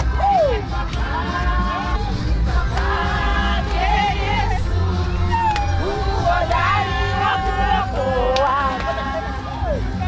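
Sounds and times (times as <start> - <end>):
music: 0.0 - 10.0
women singing: 0.0 - 10.0.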